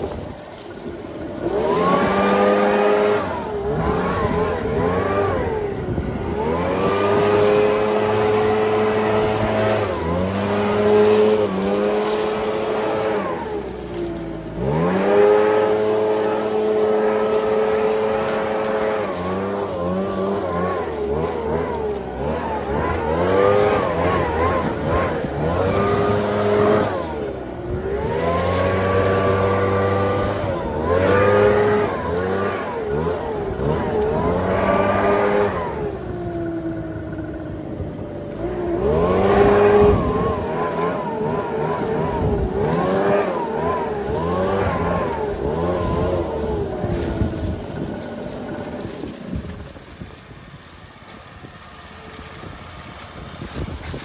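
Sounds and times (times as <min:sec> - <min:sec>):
leaf blower engine revving: 0:00.0 - 0:54.0.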